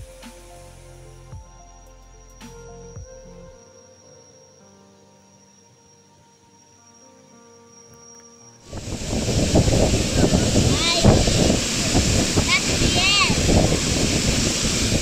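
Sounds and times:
soft music: 0.0s - 14.4s
waterfall rushing: 8.7s - 15.0s.

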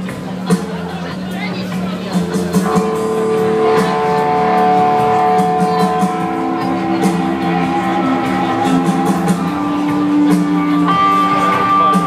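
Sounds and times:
distorted electric guitar: 0.0s - 12.0s
live rock band playing: 0.0s - 12.0s.

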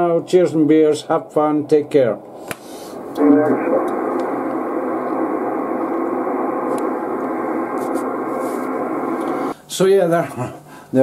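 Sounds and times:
radio band noise hiss: 0.0s - 11.0s.

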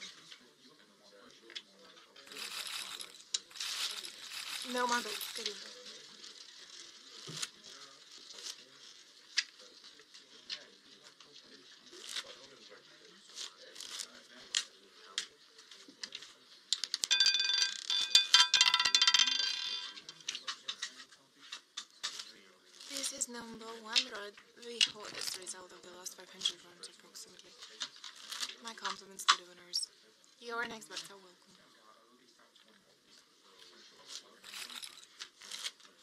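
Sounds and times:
roulette ball clattering: 16.7s - 20.3s
roulette ball running round wheel: 16.8s - 20.0s.

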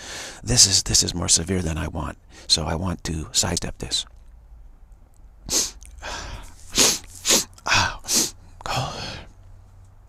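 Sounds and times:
man sneezing: 5.5s - 9.1s.

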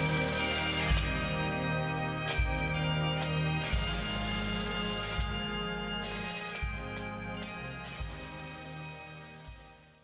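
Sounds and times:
bagpipe tune over drone: 0.0s - 10.0s.

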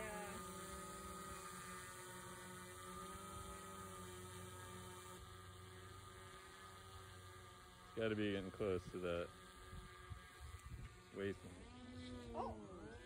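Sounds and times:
propeller and motor hum: 0.0s - 13.0s.

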